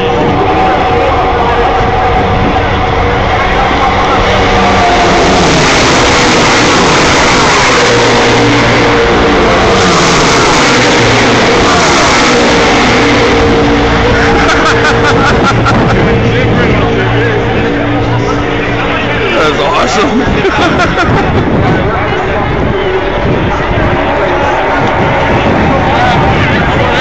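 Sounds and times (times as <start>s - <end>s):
race cars passing at speed: 0.0s - 27.0s.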